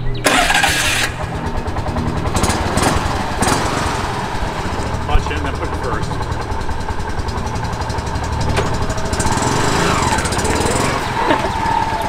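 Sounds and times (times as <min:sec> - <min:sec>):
small engine putt-putt: 0:00.1 - 0:12.0.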